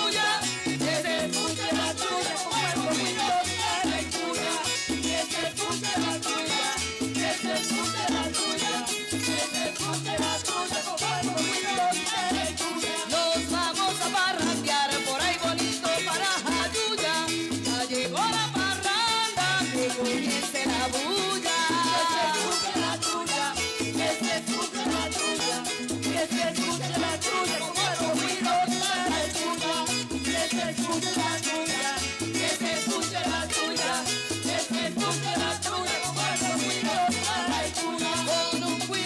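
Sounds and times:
cuatro melody: 0:00.0 - 0:39.0
guitar: 0:00.0 - 0:39.0.

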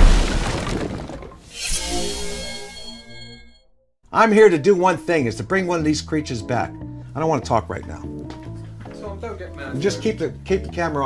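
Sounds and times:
shattering crash: 0:00.0 - 0:02.7.

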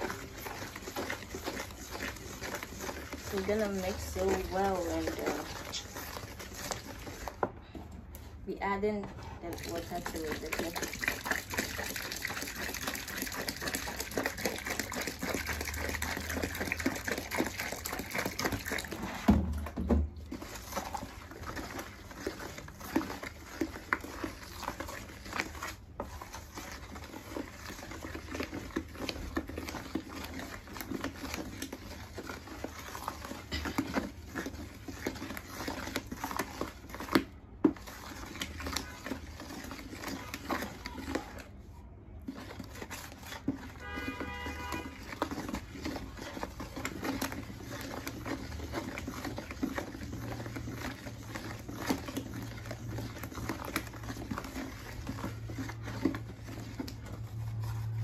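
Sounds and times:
water pouring into a bucket: 0:00.0 - 0:07.5, 0:09.4 - 0:41.5, 0:42.3 - 0:58.0
wooden stick churning thick soap: 0:00.0 - 0:58.0.

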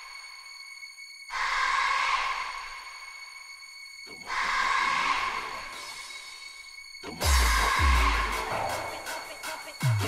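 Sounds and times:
swell of noise with high tones: 0:00.0 - 0:10.0.

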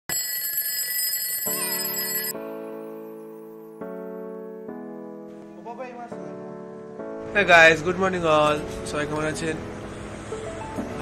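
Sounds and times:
alarm clock ringing: 0:00.1 - 0:02.6.

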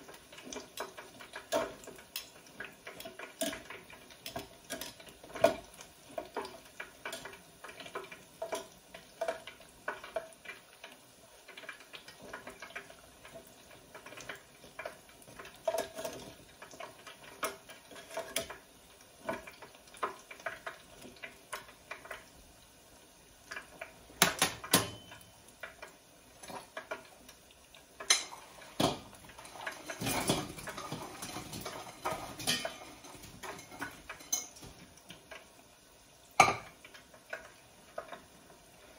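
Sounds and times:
utensils clattering on steel pot: 0:00.0 - 0:10.2, 0:11.9 - 0:18.6, 0:24.2 - 0:25.4, 0:28.0 - 0:35.2, 0:36.4 - 0:37.4
food frying in deep fryer: 0:00.0 - 0:38.9
metal utensil in oil: 0:28.0 - 0:34.7.

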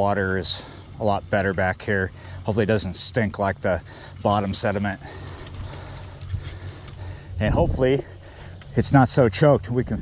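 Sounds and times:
bicycle rolling over grass: 0:00.0 - 0:09.5.

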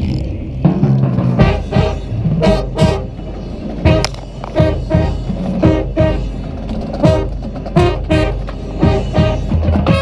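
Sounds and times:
marching band playing: 0:00.6 - 0:10.0
loud accented band hits: 0:00.8 - 0:10.0
rumbling handling noise: 0:03.4 - 0:05.6.

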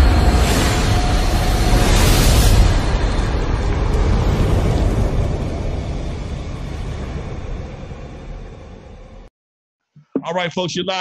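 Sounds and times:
deep rumbling logo sound effect: 0:00.0 - 0:09.3.

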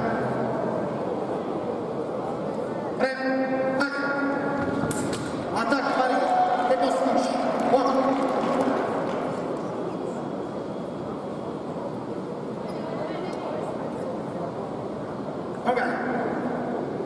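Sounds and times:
crowd hum: 0:03.9 - 0:15.6.

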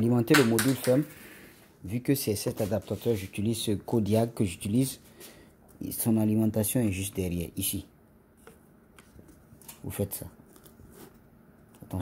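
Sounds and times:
man talking: 0:00.0 - 0:01.1, 0:01.8 - 0:05.0, 0:05.8 - 0:07.9, 0:09.8 - 0:10.4.

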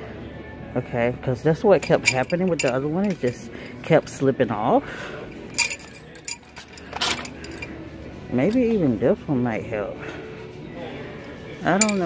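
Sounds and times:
metal wrenches clinking: 0:01.6 - 0:04.1, 0:05.3 - 0:07.8, 0:11.7 - 0:12.0.

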